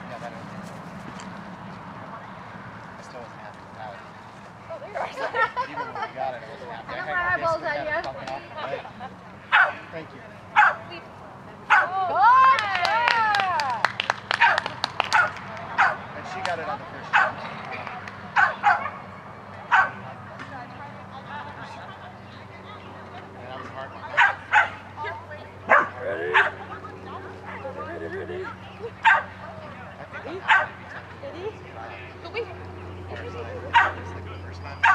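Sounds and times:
dog barking: 9.5 - 9.8, 10.6 - 10.9, 11.7 - 11.9, 14.4 - 16.0, 17.1 - 17.4, 18.4 - 19.0, 19.7 - 20.0, 24.2 - 24.8, 25.7 - 26.6, 29.0 - 29.4, 30.5 - 30.8, 33.7 - 34.0.

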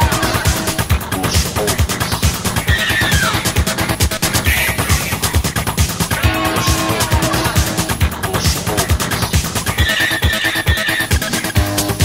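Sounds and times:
techno track with kick drum: 0.0 - 12.0.

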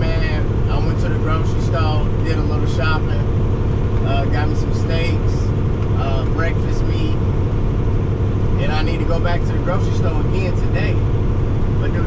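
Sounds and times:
truck diesel engine droning: 0.0 - 12.0
tyres on highway: 0.0 - 12.0.

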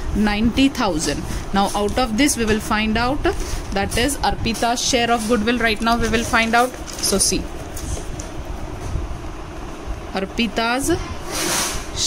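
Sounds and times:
steady low rumble: 0.0 - 11.3.

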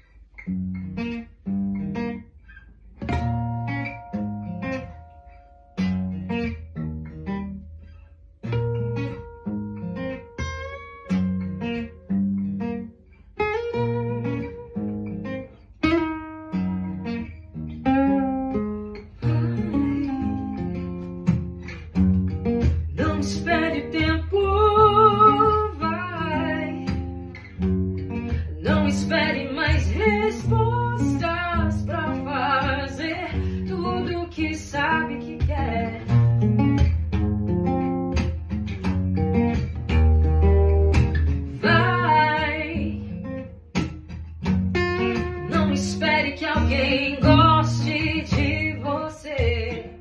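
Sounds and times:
acoustic guitars strummed: 0.4 - 12.8, 13.5 - 50.0
woman singing: 22.9 - 27.2, 28.3 - 36.3, 41.5 - 43.2, 45.4 - 50.0.

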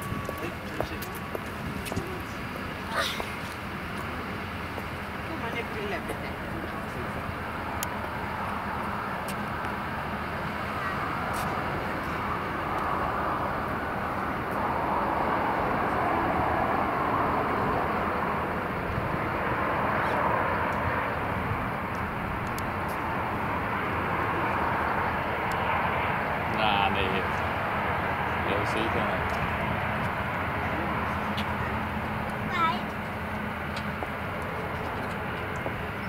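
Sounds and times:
jet engines roaring: 0.0 - 36.0.

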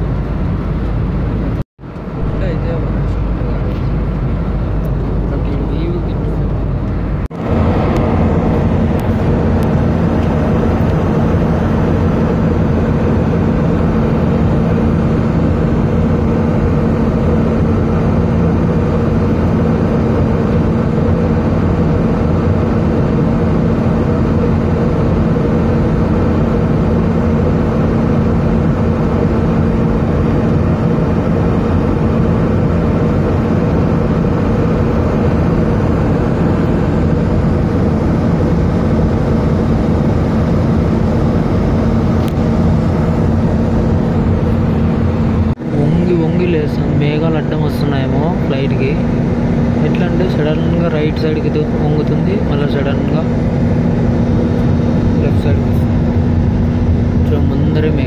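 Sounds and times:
constant hum: 0.0 - 58.0
jet cabin engine roar: 0.0 - 58.0.

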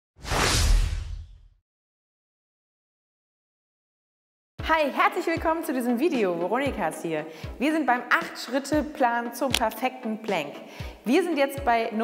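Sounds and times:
whoosh sound effect: 0.2 - 1.5.

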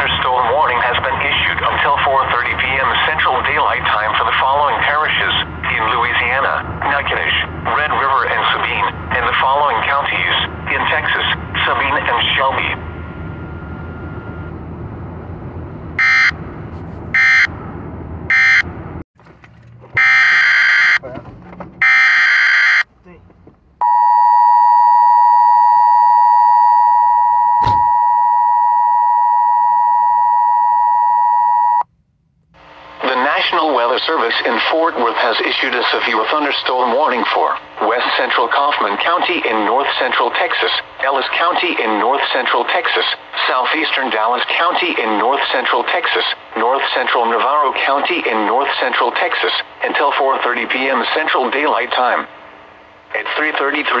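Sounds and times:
synthesized voice speaking: 0.0 - 12.8, 33.0 - 52.3, 53.1 - 54.0
two-tone attention signal: 16.0 - 16.4, 17.2 - 17.5, 18.3 - 18.6, 20.0 - 21.0.

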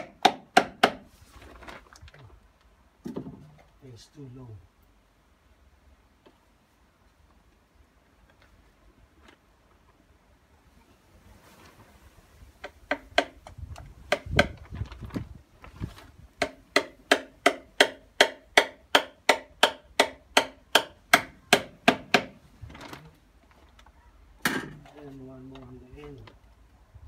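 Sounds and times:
hammer driving nails into timber: 0.0 - 1.1, 12.6 - 14.6, 16.4 - 22.4.

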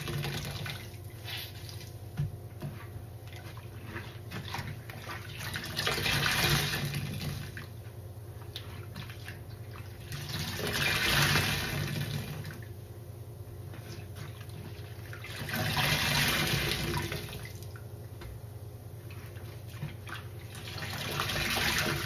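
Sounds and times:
water gushing: 0.0 - 2.0, 3.6 - 7.7, 9.1 - 12.6, 14.9 - 17.7, 19.9 - 22.0
sponges squelching in water: 0.0 - 12.4.

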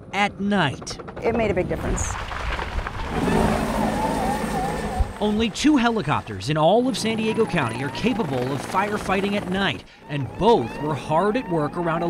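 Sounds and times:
helicopter engine and rotor: 0.2 - 1.5, 3.8 - 12.0.

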